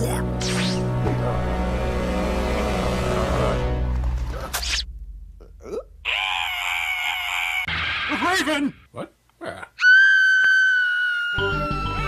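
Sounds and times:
cartoon background music: 0.0s - 4.8s
cartoon character screaming: 6.0s - 8.5s, 9.8s - 12.0s.

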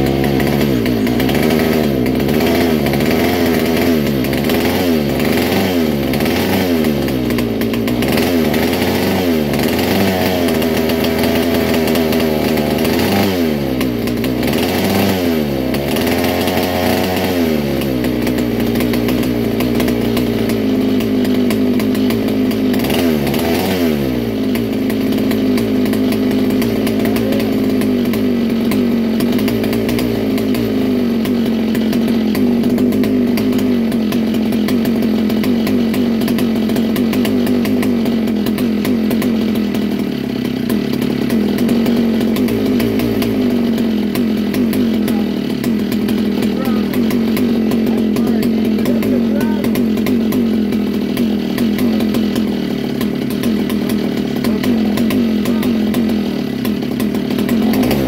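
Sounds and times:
two-stroke engine running: 0.0s - 58.0s.

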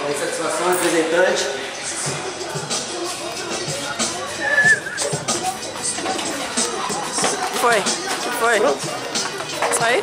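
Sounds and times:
hip hop music: 0.0s - 10.0s
people's voices: 0.0s - 10.0s.

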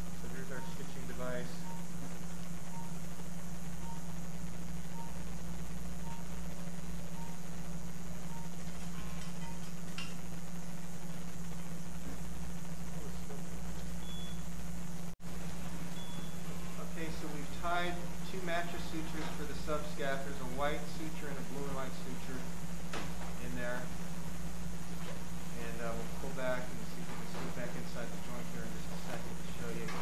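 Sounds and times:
steady electrical hum: 0.0s - 30.0s
short electronic beeps: 1.5s - 2.0s, 2.7s - 3.0s, 3.8s - 4.1s, 4.9s - 5.2s, 6.0s - 6.4s, 7.1s - 7.4s, 14.0s - 14.4s.

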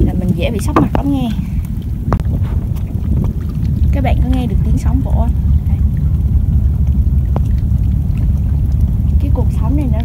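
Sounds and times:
small waves lapping against rocks: 0.0s - 10.0s
wind rumble on microphone: 0.0s - 10.0s.

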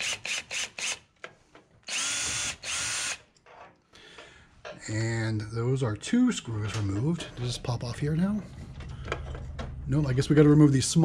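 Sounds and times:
drill clicks: 0.0s - 3.2s
drill motor whining: 1.9s - 3.2s.

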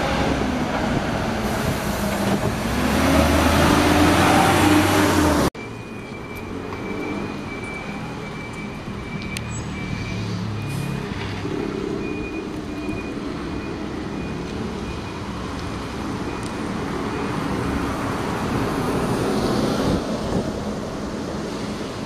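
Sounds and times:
bus tyre and road noise: 0.0s - 22.0s
steady traffic: 0.0s - 22.0s.

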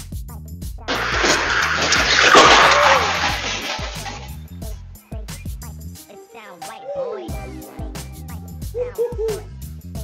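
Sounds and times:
music: 0.0s - 10.0s.

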